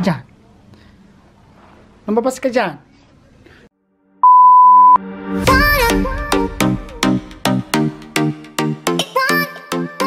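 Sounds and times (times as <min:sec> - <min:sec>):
test tone beep: 0:04.2 - 0:05.0.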